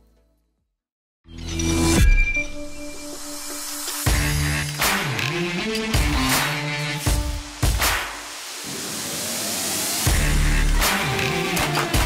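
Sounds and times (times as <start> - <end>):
rushing hiss riser: 6.3 - 11.3.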